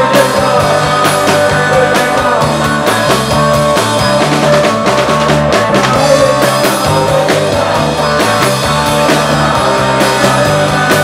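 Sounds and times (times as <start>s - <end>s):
drum hits: 0.0s - 11.0s
live rock band playing: 0.0s - 11.0s.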